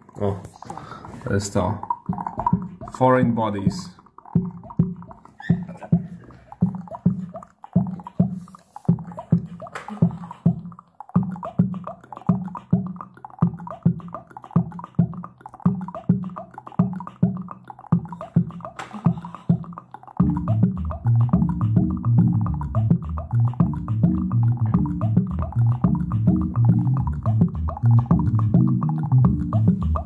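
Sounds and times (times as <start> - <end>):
punchy beat through a speaker: 2.1 - 3.0, 4.4 - 30.0.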